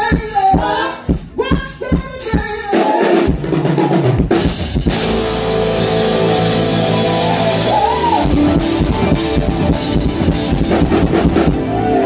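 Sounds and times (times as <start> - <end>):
drum strikes: 0.0 - 11.7
live band playing: 0.0 - 12.0.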